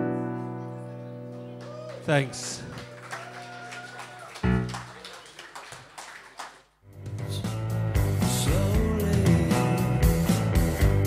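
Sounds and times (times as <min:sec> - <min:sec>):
music: 0:00.0 - 0:02.1, 0:04.3 - 0:04.9, 0:06.9 - 0:11.0.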